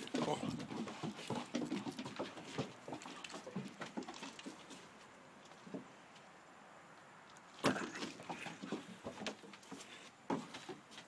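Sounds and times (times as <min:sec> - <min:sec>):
paws pattering on wooden boards: 0:00.0 - 0:06.2, 0:07.6 - 0:11.0.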